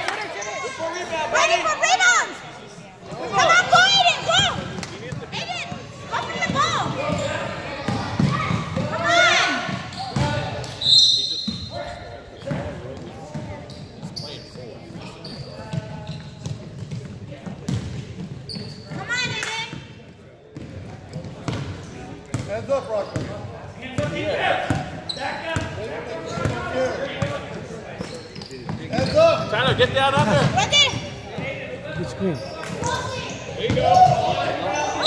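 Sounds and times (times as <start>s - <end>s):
referee's whistle: 10.8s - 11.8s.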